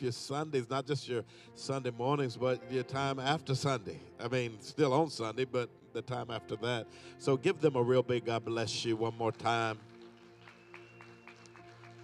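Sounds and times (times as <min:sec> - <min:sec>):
soft held chord music: 0:00.0 - 0:12.0
faint hand claps: 0:09.3 - 0:12.0.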